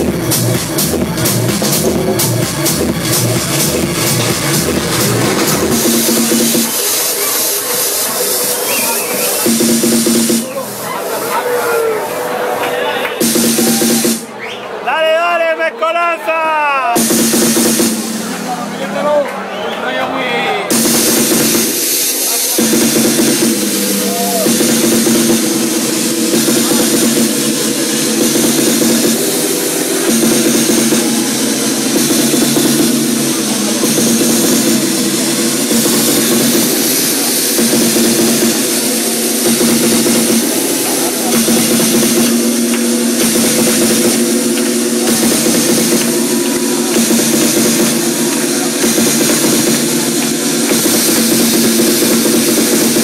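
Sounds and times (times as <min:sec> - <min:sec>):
techno music over club sound system: 0:00.0 - 0:14.4, 0:15.0 - 0:53.0.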